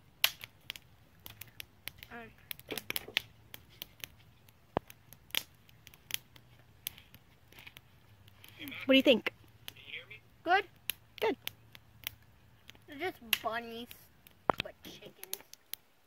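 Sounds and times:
campfire crackling and popping: 0.0 - 16.0.

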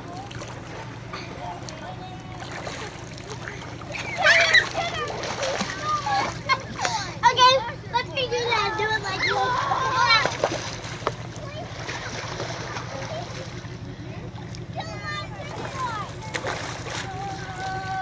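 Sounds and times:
water splashing: 0.0 - 18.0
children shrieking and calling out: 3.9 - 7.7, 8.3 - 10.4, 17.0 - 18.0.

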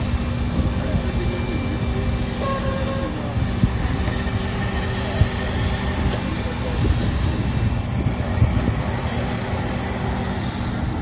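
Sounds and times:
paving machinery rumbling: 0.0 - 11.0
voices: 0.0 - 11.0.

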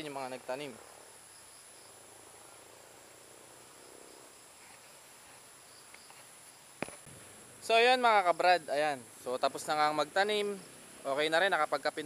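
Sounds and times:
insects chirring: 0.0 - 12.0.

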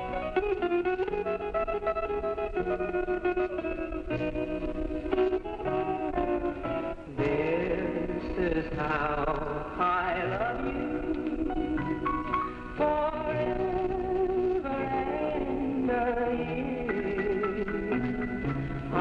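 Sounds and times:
guitar-led country music: 0.0 - 19.0.

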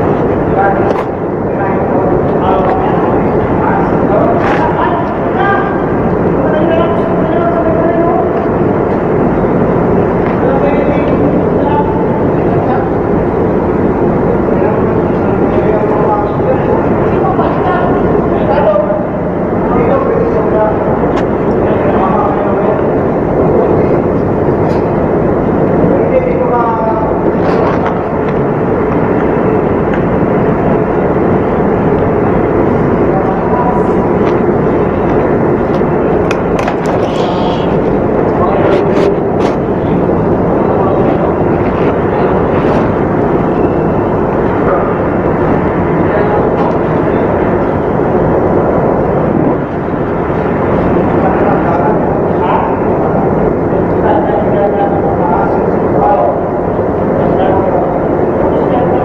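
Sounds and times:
machinery drone: 0.0 - 59.0
muffled voices: 0.0 - 59.0.

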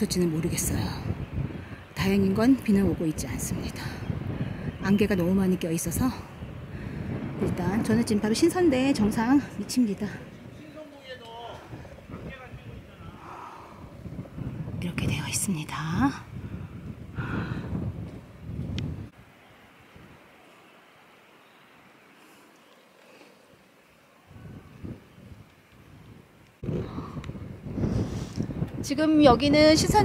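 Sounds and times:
faint outdoor background: 0.0 - 30.0
microphone handling rumble: 13.8 - 19.1, 24.4 - 30.0.

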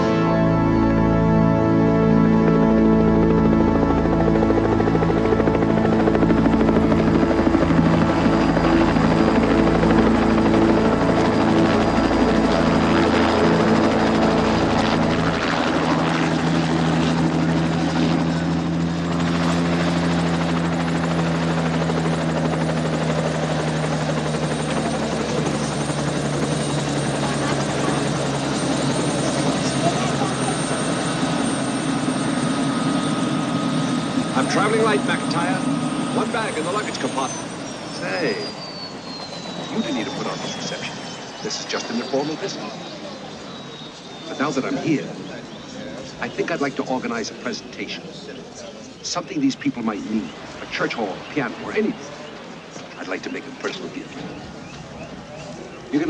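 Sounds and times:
helicopter rotor and engine droning: 0.0 - 56.0.

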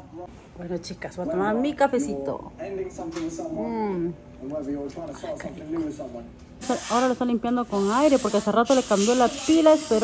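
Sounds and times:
compressed air can hissing: 6.6 - 10.0.

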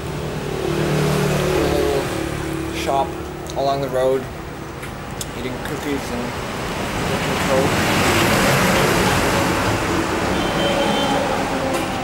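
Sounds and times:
vehicle passing close by: 0.0 - 3.4, 6.3 - 12.0.

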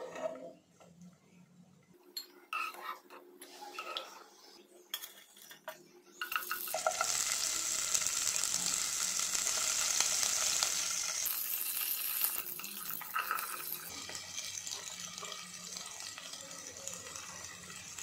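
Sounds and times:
chillies sizzling in hot oil: 6.2 - 18.0.

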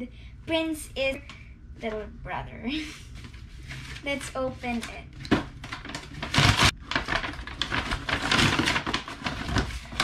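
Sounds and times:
paper bag and tissue rustling: 2.7 - 10.0.

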